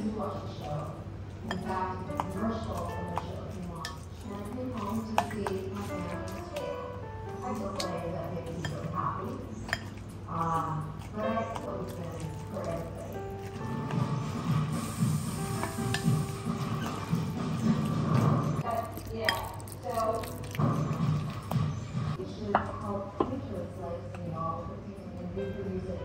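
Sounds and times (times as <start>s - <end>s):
background music: 0.0s - 24.0s
wooden spoon stirring in glass bowl: 1.4s - 22.2s.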